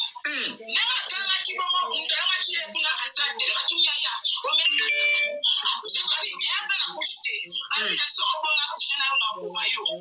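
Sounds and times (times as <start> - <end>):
high-pitched voice talking rapidly: 0.0 - 10.0.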